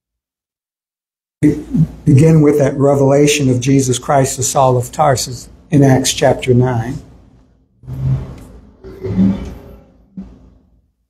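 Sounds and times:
man's throaty vocal sounds: 0:01.4 - 0:02.1.

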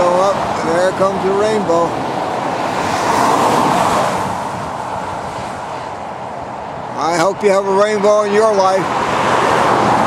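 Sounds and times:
vehicle passing on highway: 0:00.0 - 0:10.0.

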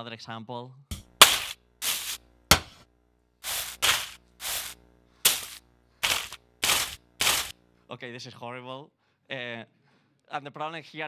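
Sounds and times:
drumstick hits and scrapes: 0:00.9 - 0:02.8, 0:03.4 - 0:07.5.

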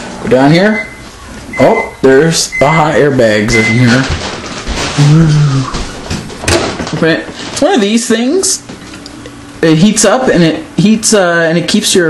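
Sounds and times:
man making wordless vocal sound: 0:05.0 - 0:05.8.

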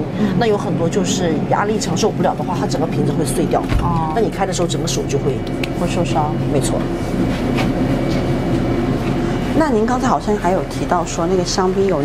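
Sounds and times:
machinery humming: 0:00.0 - 0:12.0.

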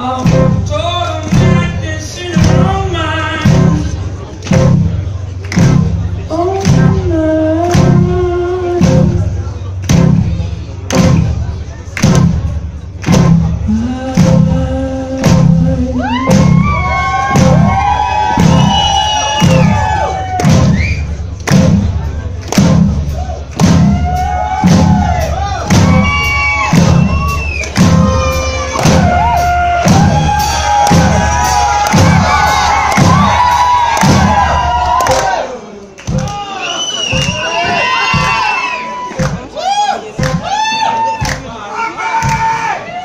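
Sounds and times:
heavy drum beat: 0:00.0 - 0:35.4, 0:36.0 - 0:41.6
live rock band playing: 0:15.2 - 0:35.3.

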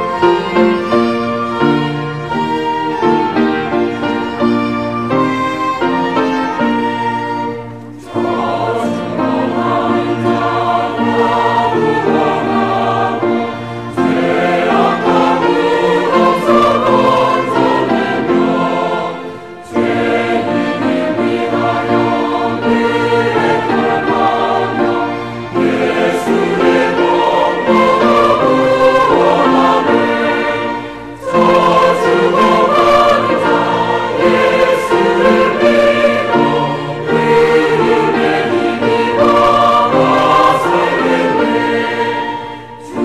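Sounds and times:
church choir singing a hymn: 0:00.0 - 0:43.0
string ensemble: 0:00.0 - 0:43.0.

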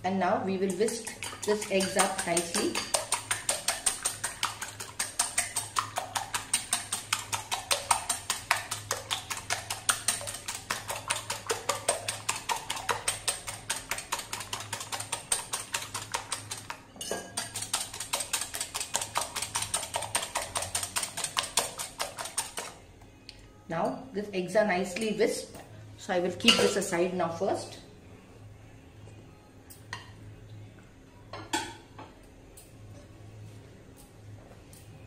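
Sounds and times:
whisk clicking against glass bowl: 0:00.6 - 0:16.8, 0:17.4 - 0:22.7.

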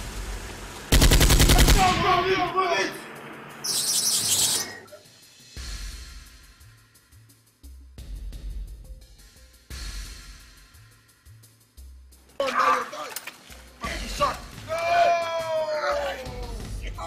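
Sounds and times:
automatic rifle fire: 0:00.9 - 0:02.2.

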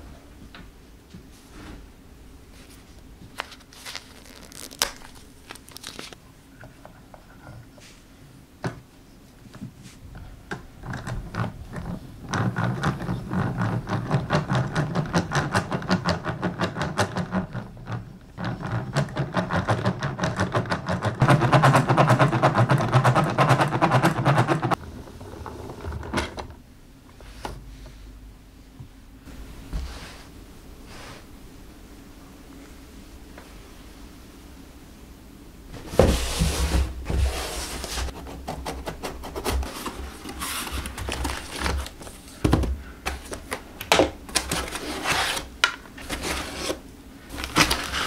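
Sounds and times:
foam rubbing and rustling: 0:02.5 - 0:06.2, 0:35.7 - 0:48.0.

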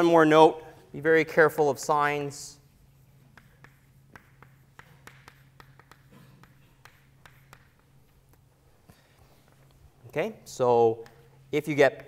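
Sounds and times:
low room hum: 0:00.0 - 0:12.0
chalk tapping on a chalkboard: 0:02.7 - 0:08.5, 0:11.0 - 0:12.0.

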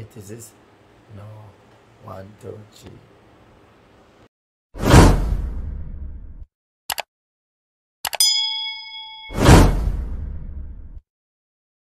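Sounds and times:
bright bell ding: 0:08.2 - 0:09.8.

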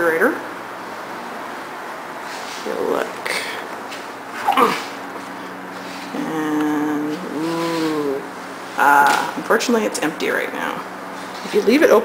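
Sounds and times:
person humming: 0:06.1 - 0:08.3.

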